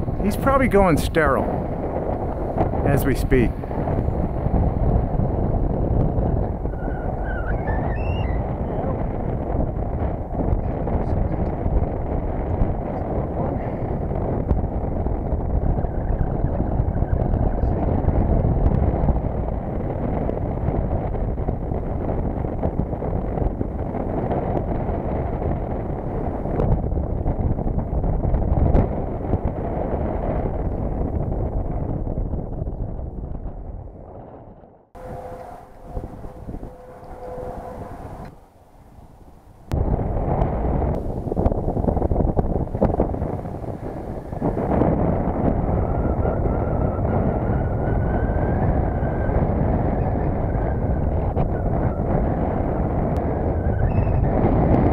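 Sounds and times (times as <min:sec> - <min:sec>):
wind buffeting microphone: 0:00.0 - 0:54.9.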